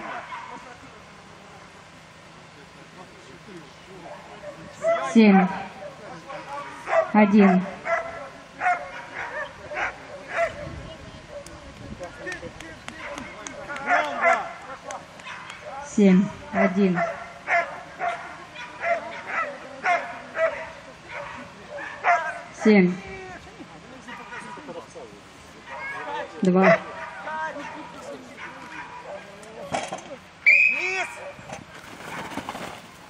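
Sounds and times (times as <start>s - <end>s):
dog barking: 0.0s - 0.6s, 6.8s - 10.8s, 13.0s - 14.6s, 15.2s - 15.7s, 16.6s - 22.6s, 24.1s - 24.7s, 25.6s - 29.4s.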